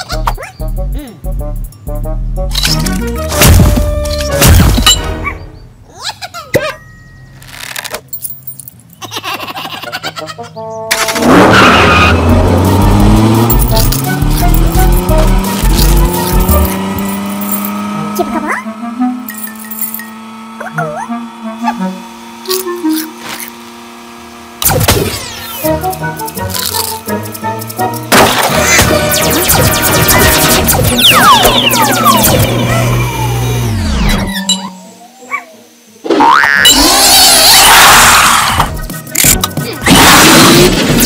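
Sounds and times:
cartoon soundtrack music: 0.0 - 5.9, 9.7 - 17.2, 17.8 - 19.8, 20.5 - 23.2, 24.6 - 35.3, 36.1 - 41.0
swooping sounds: 25.1 - 35.7
cartoon falling glide: 28.1 - 38.7.

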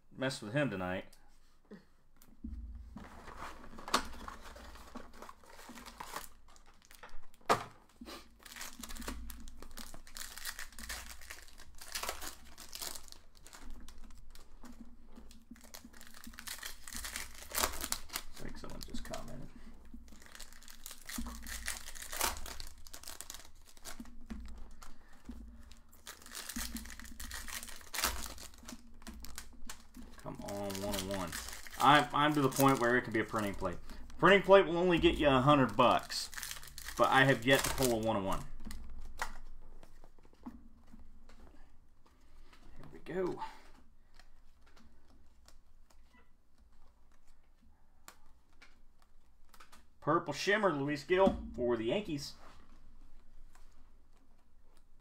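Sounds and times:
wrappers tearing and crinkling: 3.6 - 7.4, 8.1 - 39.6.

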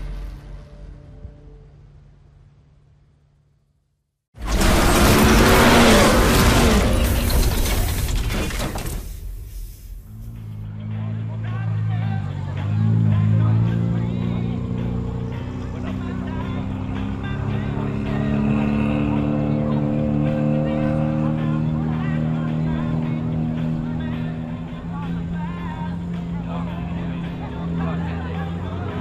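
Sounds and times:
race car engines running: 4.4 - 9.0, 10.0 - 29.0.

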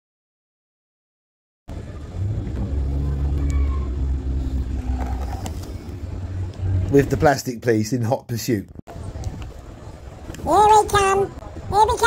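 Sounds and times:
vehicle engine humming: 1.7 - 7.8.

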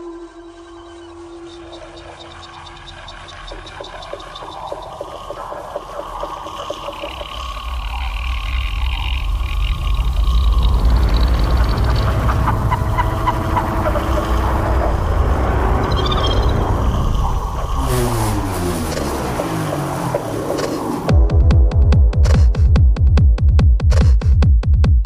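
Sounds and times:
deep rumbling bass: 7.2 - 25.0.

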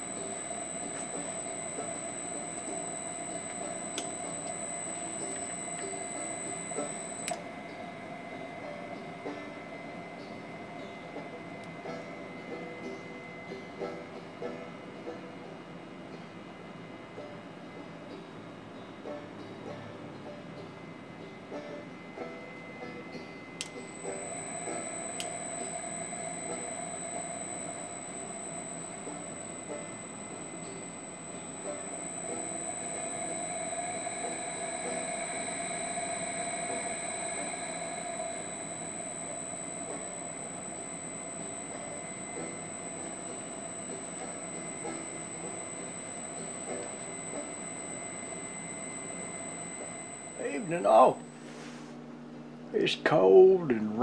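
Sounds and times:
electric motor whine: 0.0 - 14.7, 20.6 - 51.6.

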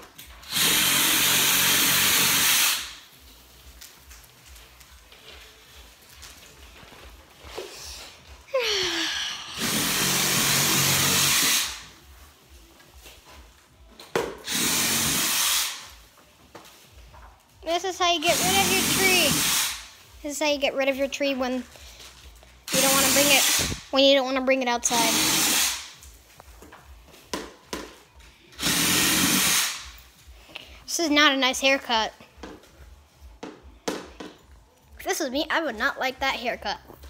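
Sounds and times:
power saw cutting branches: 18.2 - 19.8, 22.7 - 23.8.

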